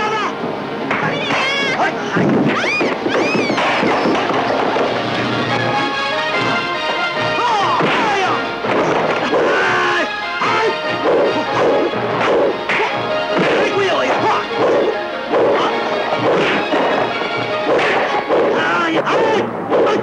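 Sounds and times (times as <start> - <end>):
dramatic music: 0.0 - 20.0
punch and kick impacts: 12.3 - 13.7, 16.2 - 16.8.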